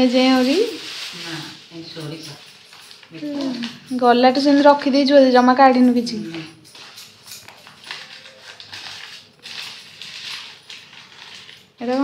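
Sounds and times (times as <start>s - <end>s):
plastic and paper wrapping crinkling: 0.0s - 12.0s.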